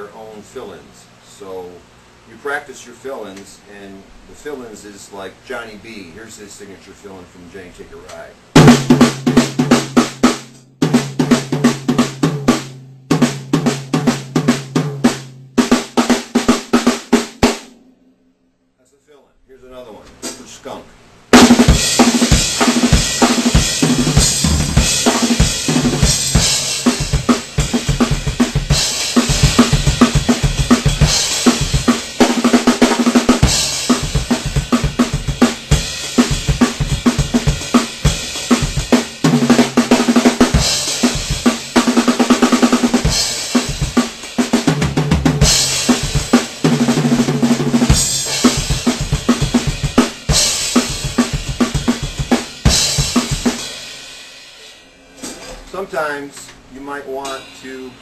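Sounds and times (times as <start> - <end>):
rock drum kit solo: 7.8 - 18.3, 20.2 - 58.0
cymbal crashes: 57.0 - 58.0.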